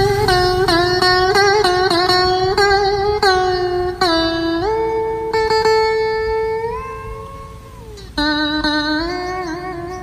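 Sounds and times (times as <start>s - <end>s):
electric guitar note bending: 0.0s - 10.0s.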